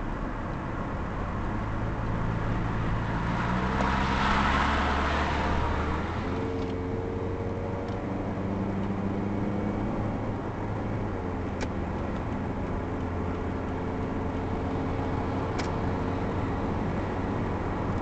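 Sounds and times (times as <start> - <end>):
car engine and road noise: 0.0 - 18.0.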